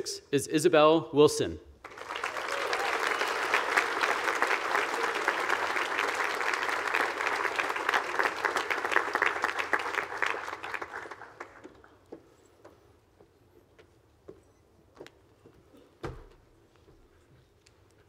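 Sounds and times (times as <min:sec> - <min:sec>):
audience applause: 0:01.8 - 0:12.0.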